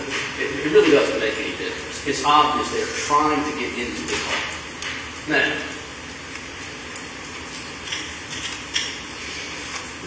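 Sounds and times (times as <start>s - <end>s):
steady room tone hiss: 0.0s - 10.0s.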